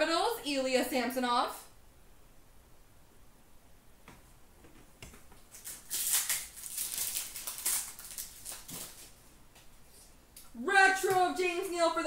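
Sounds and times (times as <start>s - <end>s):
trading cards rustling and snapping: 5.1s - 9.2s.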